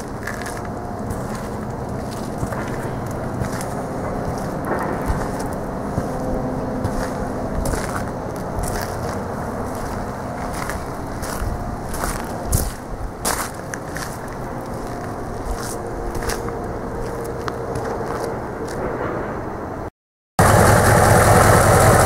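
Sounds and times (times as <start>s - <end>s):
diesel engine idling: 0.0s - 18.7s, 20.4s - 22.0s
crunching footsteps: 0.0s - 19.3s.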